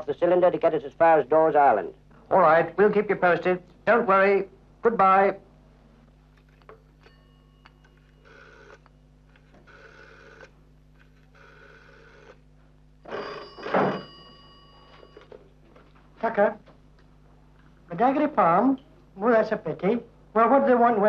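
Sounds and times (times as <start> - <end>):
telephone dial whirring: 6.4 - 12.4, 13.0 - 15.4
old telephone bell ringing: 7.0 - 8.8, 13.0 - 15.4.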